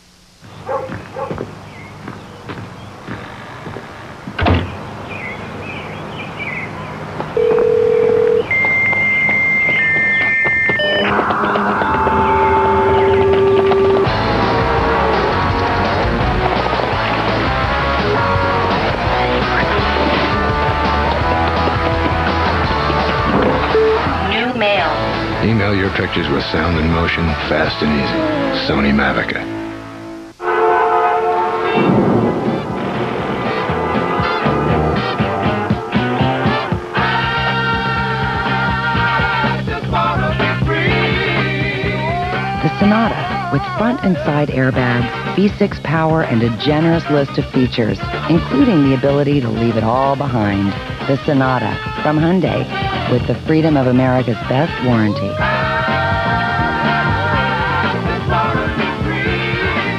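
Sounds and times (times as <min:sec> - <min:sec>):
birds chirping: 0:00.4 - 0:07.6, 0:11.8 - 0:14.2
steady electronic tones: 0:07.3 - 0:40.0
held chord of steady tones: 0:07.4 - 0:16.2
low rough rumble: 0:31.6 - 0:36.9.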